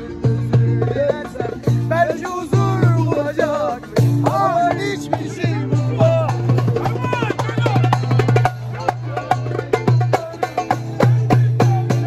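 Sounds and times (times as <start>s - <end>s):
voices singing along: 0.0s - 12.0s.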